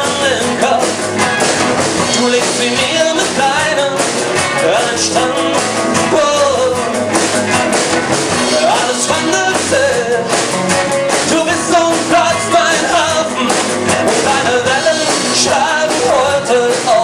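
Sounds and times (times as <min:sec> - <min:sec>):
live band playing: 0:00.0 - 0:17.0.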